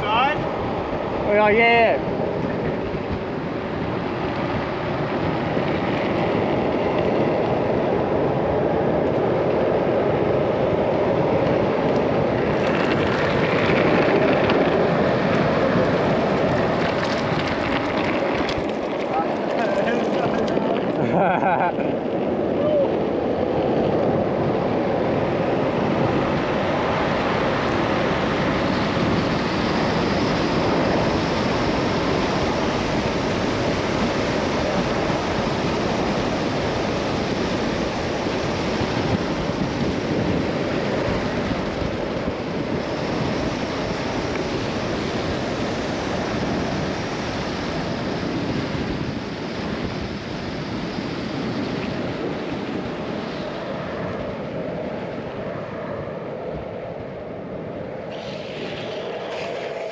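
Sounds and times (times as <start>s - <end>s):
longboard wheels rolling on asphalt: 0.0s - 59.9s
wind rushing over microphone: 0.0s - 59.9s.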